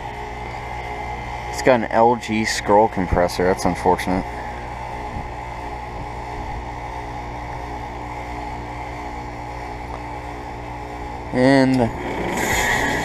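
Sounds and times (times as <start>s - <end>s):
heat pump compressor humming: 0.0s - 13.0s.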